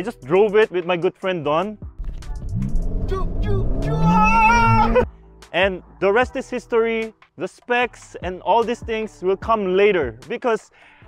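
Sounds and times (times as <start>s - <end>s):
car engine accelerating: 2.0s - 5.0s.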